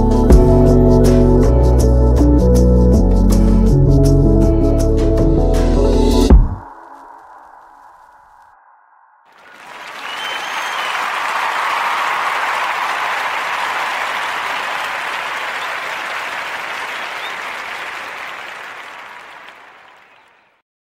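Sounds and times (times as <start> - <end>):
crowd applause: 9.3 - 20.6.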